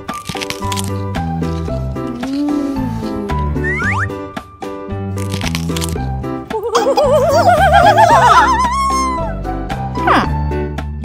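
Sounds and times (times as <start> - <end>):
crunching bites into apple: 0.0 - 3.1, 5.2 - 6.1
bouncy children's music: 0.0 - 11.0.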